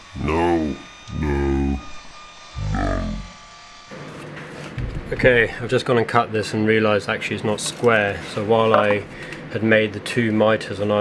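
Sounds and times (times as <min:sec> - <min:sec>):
man groaning no: 0:00.2 - 0:01.9, 0:02.6 - 0:03.3.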